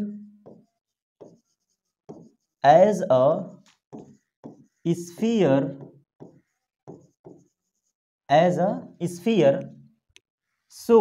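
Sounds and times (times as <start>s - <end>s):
stylus strokes on screen: 0.2s - 2.7s, 3.4s - 8.0s
pen knocking on glass: 0.4s - 2.5s, 3.7s - 7.6s.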